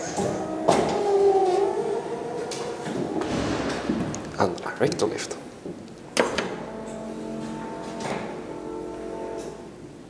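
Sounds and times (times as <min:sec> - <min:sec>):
elevator machinery whining: 0:00.0 - 0:04.5, 0:05.4 - 0:10.0.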